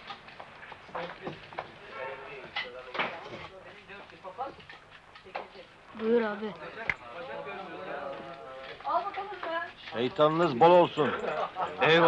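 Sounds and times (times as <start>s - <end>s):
men chattering: 0.9s - 8.8s, 9.9s - 12.0s.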